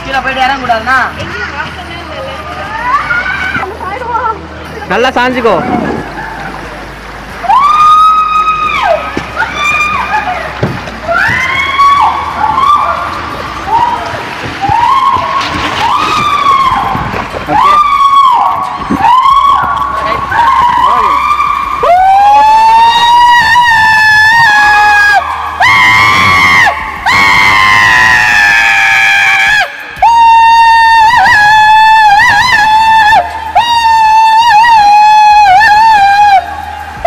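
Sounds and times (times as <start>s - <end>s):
people screaming and whooping: 2.5s - 37.0s.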